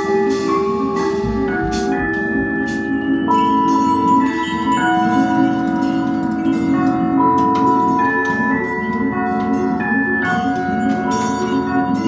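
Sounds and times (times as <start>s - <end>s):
cymbal and drum strokes: 0.0s - 4.4s
bell-like electronic tones: 0.0s - 12.0s.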